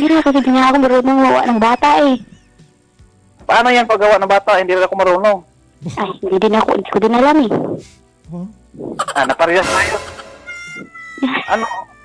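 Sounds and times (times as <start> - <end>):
faint background music: 0.0 - 12.0
person talking: 9.2 - 10.9.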